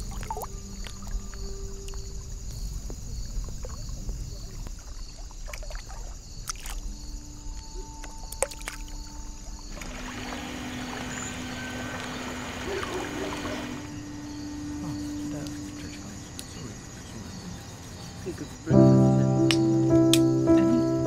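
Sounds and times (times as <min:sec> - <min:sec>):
water drips: 0:00.0 - 0:12.2
water lapping and splashing: 0:00.0 - 0:14.0.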